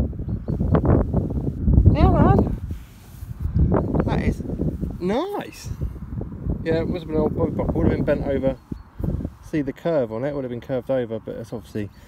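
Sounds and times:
wind buffeting microphone: 0.0s - 10.5s.

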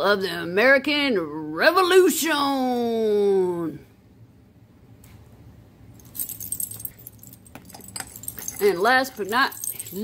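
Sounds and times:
metal medals clinking: 6.0s - 10.0s.

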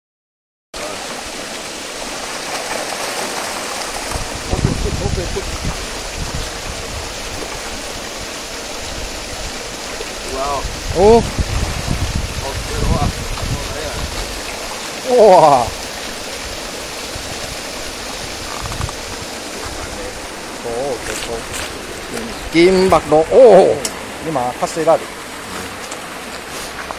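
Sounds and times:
water churning and splashing: 0.8s - 26.9s
fish thrashing in water: 2.0s - 8.0s.

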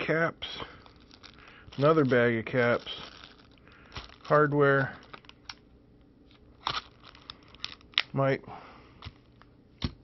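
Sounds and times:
plastic bags crinkling: 0.0s - 8.2s.

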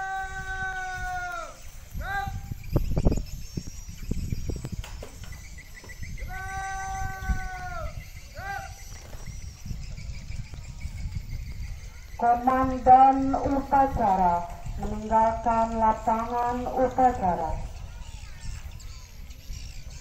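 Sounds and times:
drill commands shouted: 0.0s - 2.5s.

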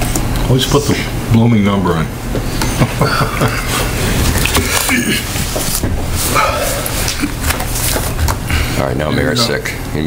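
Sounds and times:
people chuckling: 2.6s - 5.4s, 6.4s - 7.6s.

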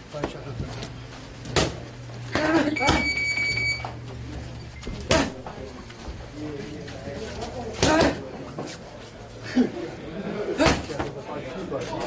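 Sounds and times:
timer beeping: 2.8s - 4.0s.

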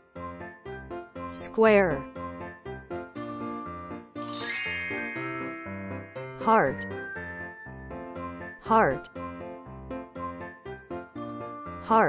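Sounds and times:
light children's background music: 0.0s - 12.0s
bright bell-like chime: 4.2s - 8.4s.

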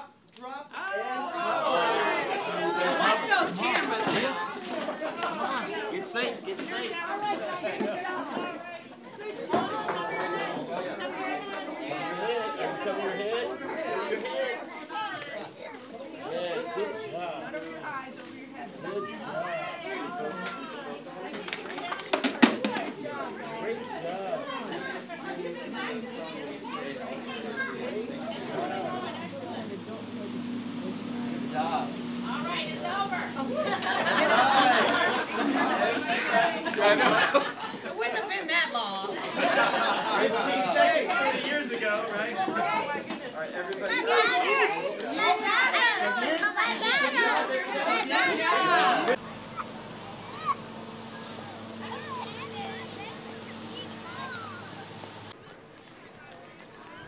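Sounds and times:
children chattering and calling out: 0.7s - 57.0s.

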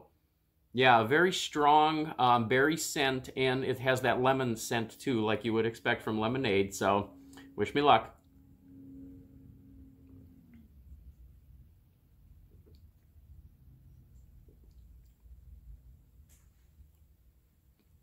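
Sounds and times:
faint low hum: 2.1s - 18.0s
sipping and swallowing: 12.2s - 16.2s.

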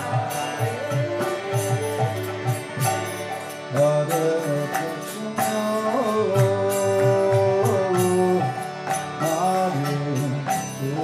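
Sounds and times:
harmonium chords: 0.0s - 11.0s
man singing: 0.0s - 11.0s.

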